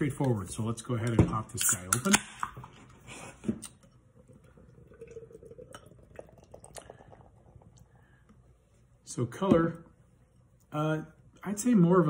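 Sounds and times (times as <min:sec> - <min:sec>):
beer fizzing: 0:03.9 - 0:08.2
beer pouring into glass: 0:04.2 - 0:08.1.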